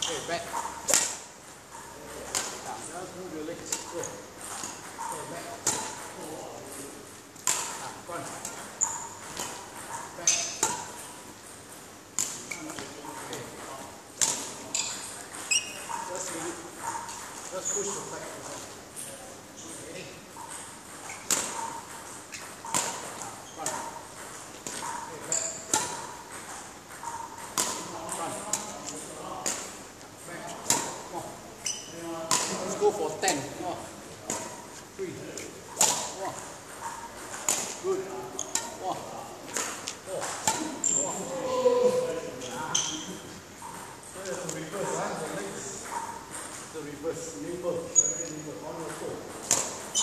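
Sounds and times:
sharp clicks and smacks of footwork: 0:00.0 - 0:31.2, 0:34.1 - 0:41.4.

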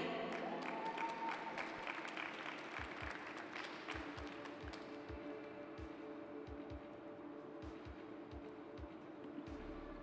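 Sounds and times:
hand clapping: 0:00.0 - 0:05.3
background music: 0:00.0 - 0:10.0
low beat: 0:03.9 - 0:10.0.

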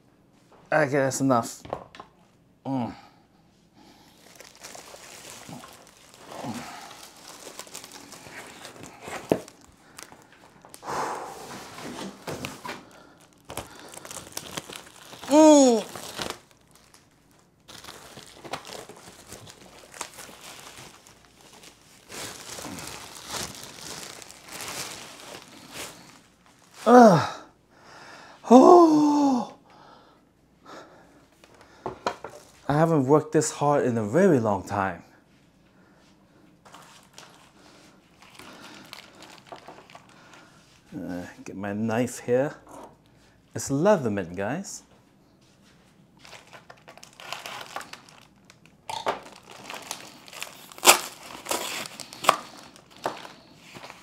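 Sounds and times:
man's wordless vocal sounds: 0:02.6 - 0:03.1, 0:26.8 - 0:27.5
plastic wrap crinkling: 0:04.0 - 0:27.0, 0:31.4 - 0:32.7, 0:36.6 - 0:40.9, 0:45.7 - 0:54.0.

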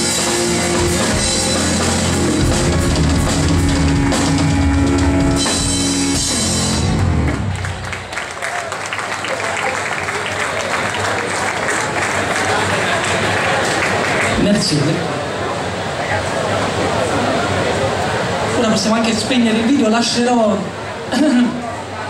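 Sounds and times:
live rock band playing: 0:00.0 - 0:08.2
audience applause: 0:06.7 - 0:15.4.

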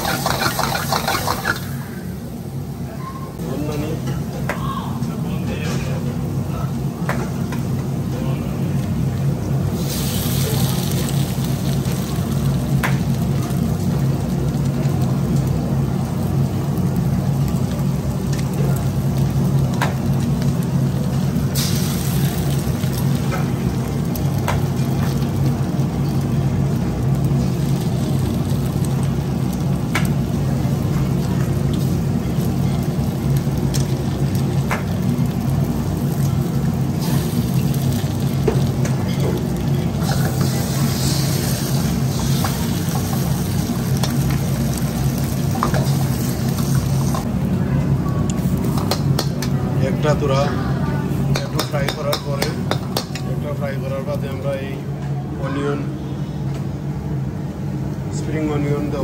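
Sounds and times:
eggs cracking on wok rim: 0:00.0 - 0:01.7
eggs sizzling in oil: 0:00.0 - 0:02.5, 0:08.5 - 0:47.4.

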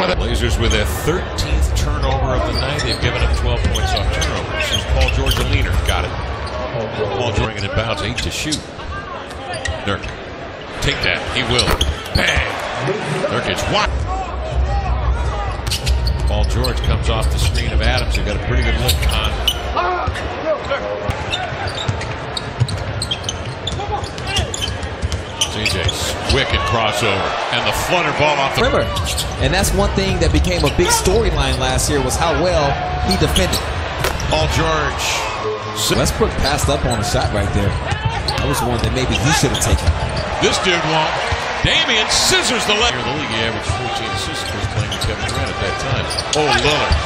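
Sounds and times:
arena crowd noise: 0:00.0 - 0:47.0
sneaker squeaks: 0:02.5 - 0:06.6, 0:09.3 - 0:10.3, 0:11.6 - 0:12.4, 0:15.6 - 0:26.5, 0:28.9 - 0:29.4, 0:37.0 - 0:40.5, 0:43.7 - 0:47.0.

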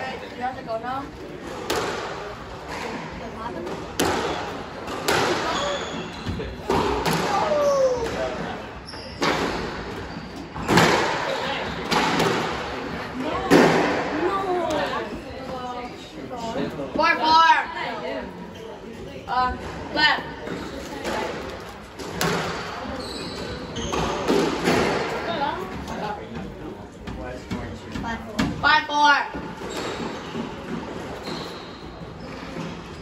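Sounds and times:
squash ball hits: 0:03.9 - 0:05.6, 0:06.6 - 0:08.4
shoes squeaking on hardwood floor: 0:05.4 - 0:06.7, 0:08.7 - 0:10.8, 0:22.8 - 0:24.3, 0:29.4 - 0:33.0.

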